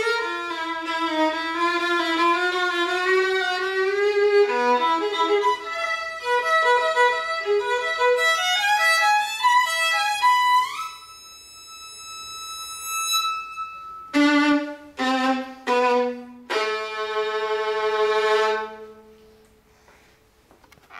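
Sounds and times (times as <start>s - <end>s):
solo violin bowed: 0.0s - 19.2s.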